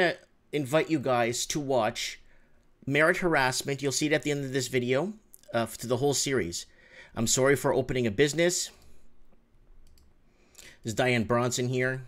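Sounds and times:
computer mouse clicking: 8.3 - 10.2.

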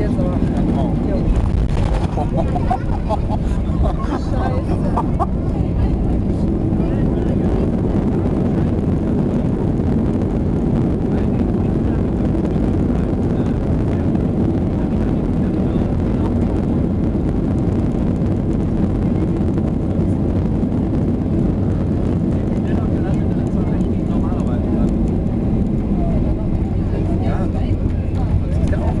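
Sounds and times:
aircraft cabin engine rumble: 0.0 - 29.0.

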